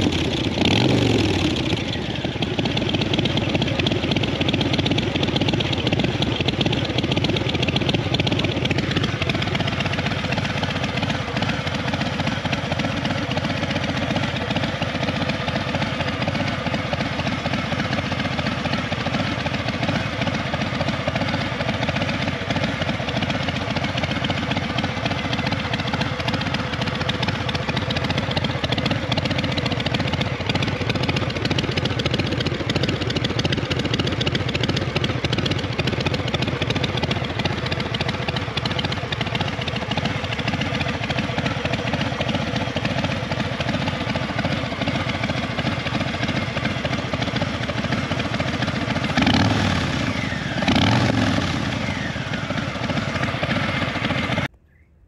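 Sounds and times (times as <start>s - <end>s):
motorcycle engine idling: 0.0s - 55.0s.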